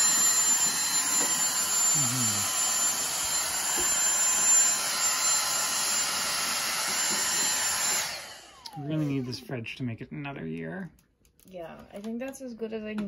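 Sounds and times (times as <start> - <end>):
handheld vacuum whining: 0.0 - 9.4.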